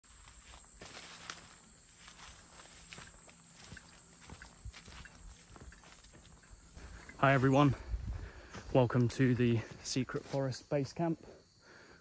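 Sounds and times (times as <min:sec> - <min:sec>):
footsteps on dry leaves: 0:00.0 - 0:10.8.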